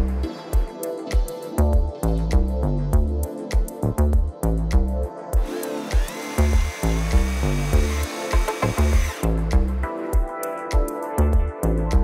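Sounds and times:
electronic music with heavy beat: 0.0 - 12.0
cordless drill whining: 5.4 - 9.7.

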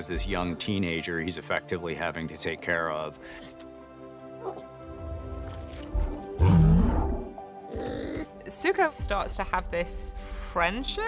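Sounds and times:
deep creature growl: 4.9 - 8.3.

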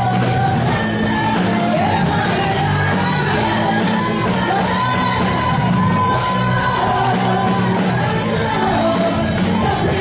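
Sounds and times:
congregation singing: 0.0 - 10.0
worship music: 0.0 - 10.0.

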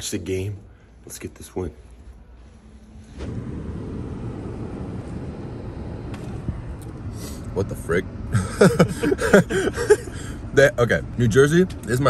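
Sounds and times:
man laughing loudly: 8.3 - 10.4.

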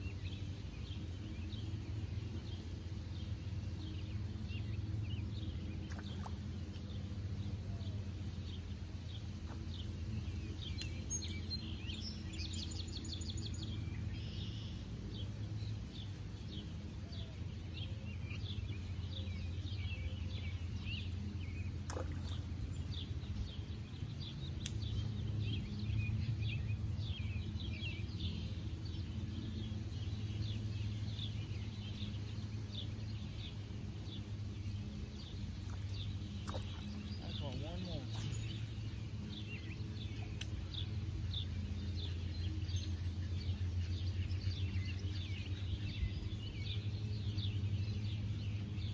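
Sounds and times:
low background hum: 0.0 - 48.9
small birds chirping and trilling: 0.0 - 48.9.

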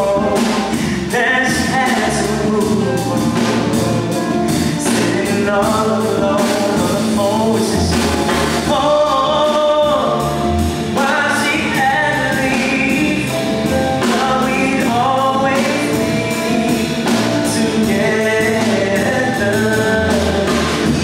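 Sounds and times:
electric guitar: 0.0 - 21.0
keyboard: 0.0 - 21.0.

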